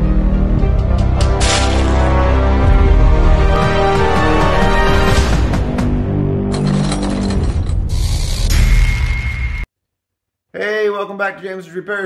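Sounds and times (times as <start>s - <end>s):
clattering machinery effects: 6.5s - 9.6s.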